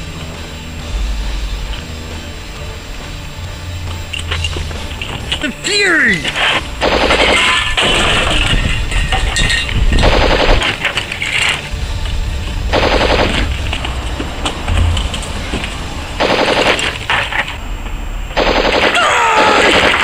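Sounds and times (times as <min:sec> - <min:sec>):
low rumble: 0:00.0 - 0:05.4, 0:06.6 - 0:18.8
machine-gun fire bursts: 0:06.4 - 0:08.5, 0:09.9 - 0:11.0, 0:12.7 - 0:13.7, 0:16.2 - 0:17.5, 0:18.4 - 0:20.0.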